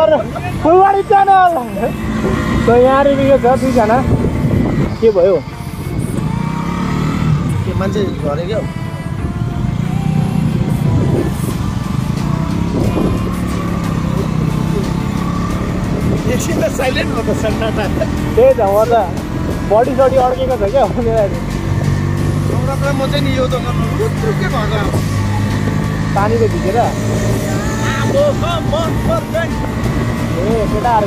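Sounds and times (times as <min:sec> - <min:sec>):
motorcycle engine accelerating: 0:00.0 - 0:31.0
wind noise on microphone: 0:03.4 - 0:15.0, 0:15.6 - 0:17.4, 0:27.5 - 0:31.0.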